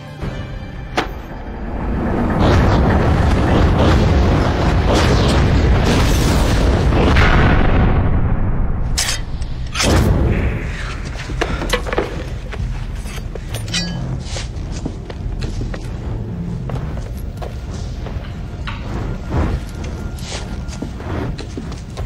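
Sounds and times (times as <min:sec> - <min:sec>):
deep rumbling boom: 0:01.7 - 0:09.0.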